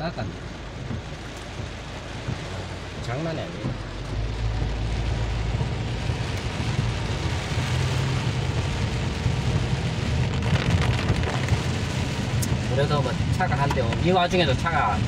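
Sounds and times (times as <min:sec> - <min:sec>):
car running on wet road: 0:00.0 - 0:15.0
heavy rain on car roof: 0:00.0 - 0:15.0.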